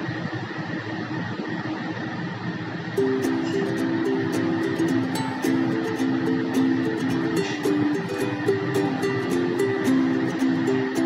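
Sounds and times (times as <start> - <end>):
soft guitar music: 3.0 - 11.0
steady hiss: 3.0 - 11.0.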